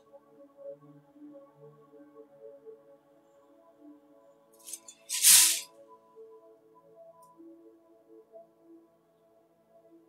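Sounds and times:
soft ambient music: 0.0 - 10.0
hissing rustle: 4.7 - 5.6.

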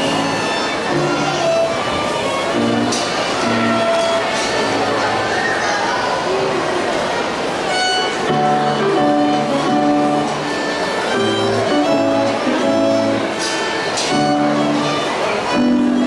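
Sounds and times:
solo violin melody: 0.0 - 5.5, 7.3 - 16.0.

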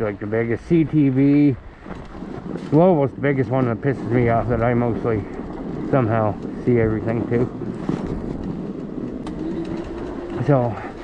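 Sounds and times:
fat tyres rumbling through snow: 0.0 - 11.0.

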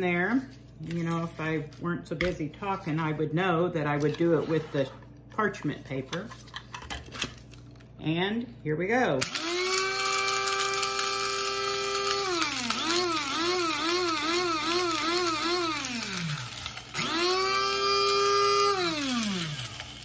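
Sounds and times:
electric coffee grinder motor: 9.2 - 20.0.

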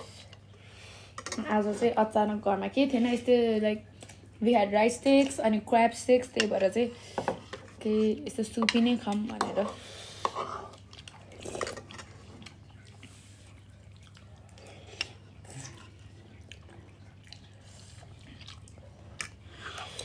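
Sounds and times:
people slurping and chewing noodles: 9.6 - 20.0.

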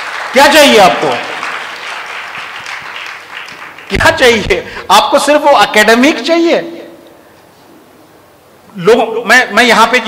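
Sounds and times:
audience applause: 0.0 - 4.3.

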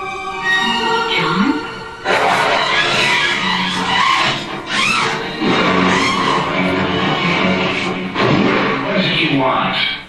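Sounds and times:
loud crash: 2.1 - 3.2, 7.2 - 9.0.

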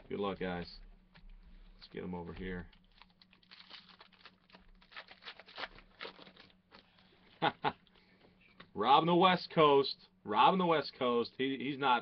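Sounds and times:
foil wrapper crinkling: 1.8 - 7.1.

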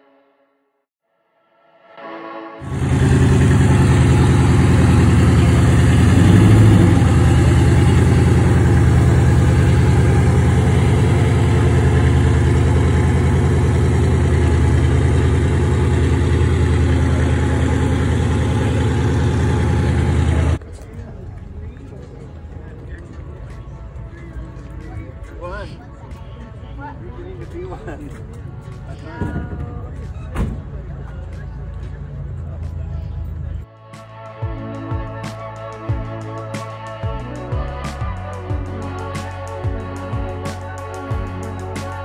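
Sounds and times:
car engine idling loudly: 2.7 - 20.6.

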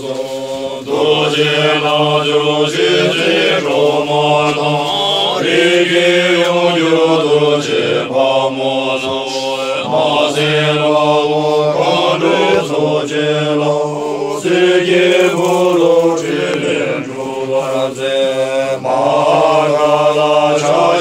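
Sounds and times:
men chanting in unison: 0.0 - 21.0.

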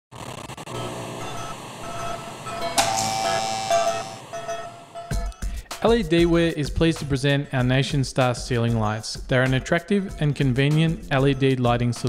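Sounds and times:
glitchy buzzing static: 0.1 - 5.1
short electronic tones: 0.7 - 5.4
held ringing tone: 0.7 - 5.5.

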